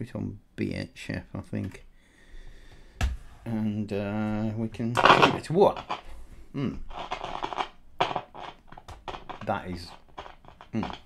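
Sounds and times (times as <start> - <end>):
radio crackling and scratching: 4.2 - 11.0.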